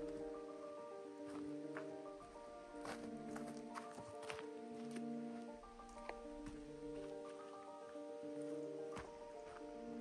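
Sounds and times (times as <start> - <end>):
calm piano music: 0.0 - 10.0
footsteps on forest trail: 0.0 - 10.0.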